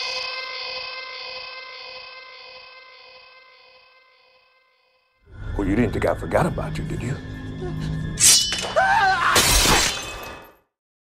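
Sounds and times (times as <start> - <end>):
glass shattering crashes: 8.2 - 10.6.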